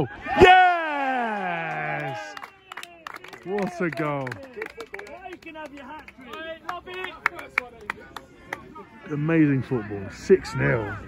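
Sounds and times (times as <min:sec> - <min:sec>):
people clapping: 0:01.2 - 0:08.8.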